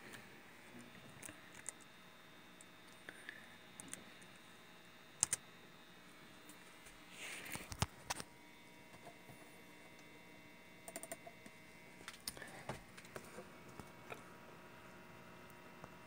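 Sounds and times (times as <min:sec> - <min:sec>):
faint steady hum: 0:00.0 - 0:16.0
laptop keys clicking: 0:05.2 - 0:05.4, 0:10.9 - 0:11.3.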